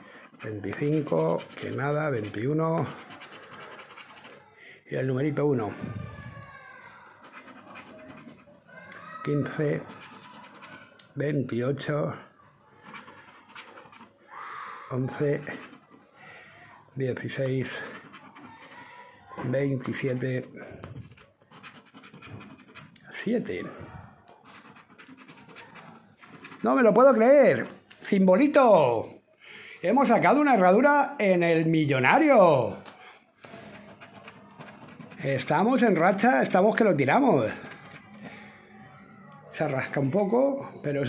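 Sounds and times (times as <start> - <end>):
finger scraping scratch card: 0.0 - 4.5, 7.1 - 11.0, 12.8 - 14.2, 15.1 - 16.0, 17.4 - 19.0, 19.8 - 23.0, 24.4 - 27.0, 33.4 - 38.1.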